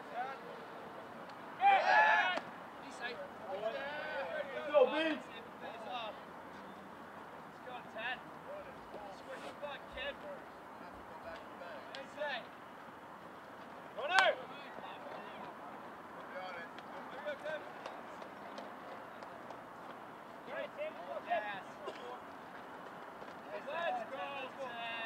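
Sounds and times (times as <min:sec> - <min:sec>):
people shouting and chattering: 0:00.0 - 0:13.0, 0:13.9 - 0:22.4, 0:23.3 - 0:25.0
loud yell: 0:01.6 - 0:02.5.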